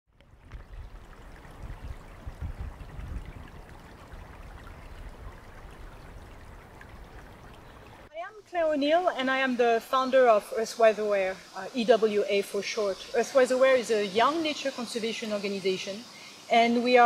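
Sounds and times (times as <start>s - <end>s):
small stream trickling: 0.1s - 17.0s.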